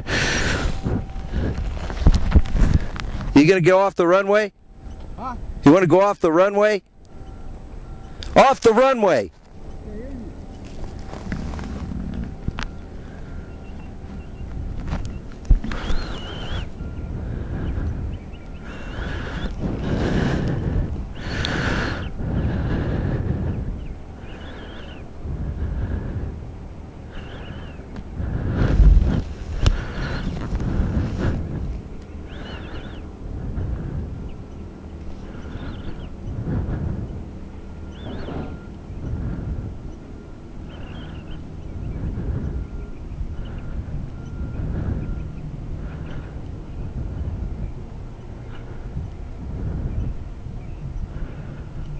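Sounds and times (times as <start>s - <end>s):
wind buffeting microphone: 0.0s - 6.1s, 7.0s - 51.9s.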